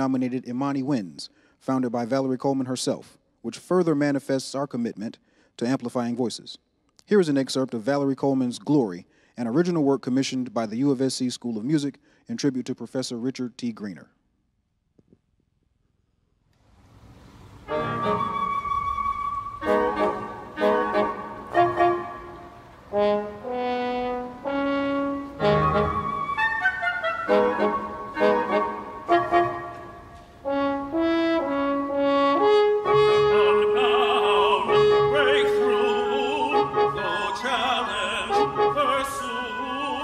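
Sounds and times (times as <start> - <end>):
brass chamber ensemble playing: 17.6 - 40.0.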